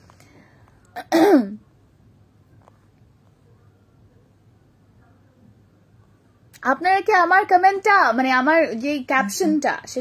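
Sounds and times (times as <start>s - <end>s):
woman clearing her throat: 1.0s - 1.6s.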